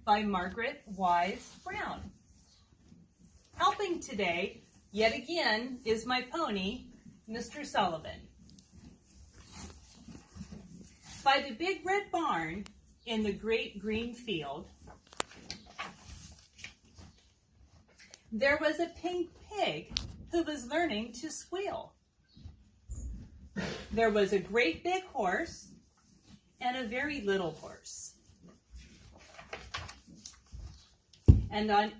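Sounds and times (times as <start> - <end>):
pony snuffling: 0.0 - 31.9
pony snorting: 23.2 - 27.5.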